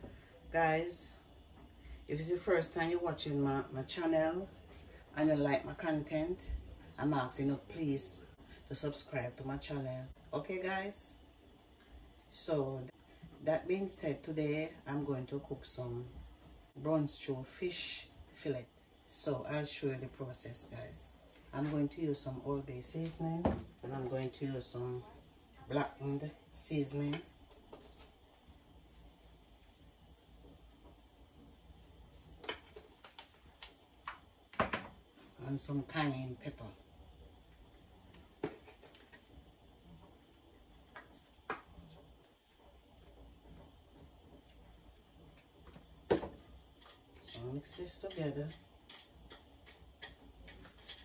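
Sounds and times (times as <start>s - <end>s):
bottle knocked down on countertop: 23.4s - 23.7s
light clicks of mixing on plate: 44.3s - 51.0s.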